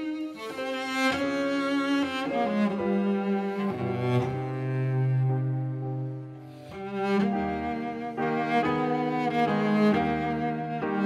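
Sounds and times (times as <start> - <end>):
cello bowing a slow melody: 0.0 - 11.0
piano accompaniment: 0.0 - 11.0.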